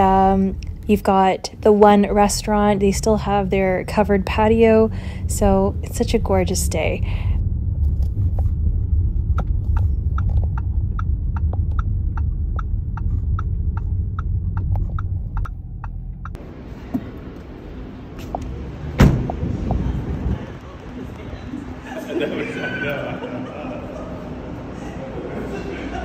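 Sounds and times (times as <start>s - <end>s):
turn signal ticking: 0.0s - 16.4s
engine and road rumble: 0.0s - 22.0s
outdoor background noise: 0.0s - 26.0s
car door shutting: 18.9s - 19.5s.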